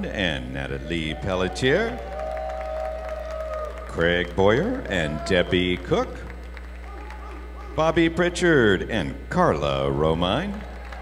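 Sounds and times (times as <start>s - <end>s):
electrical hum: 0.0s - 11.0s
audience applause: 0.9s - 7.8s, 10.4s - 11.0s.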